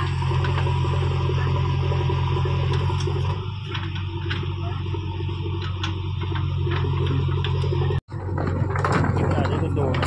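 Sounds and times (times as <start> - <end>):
diesel engine running: 0.0 - 10.0
rocks knocking and clattering: 5.6 - 10.0.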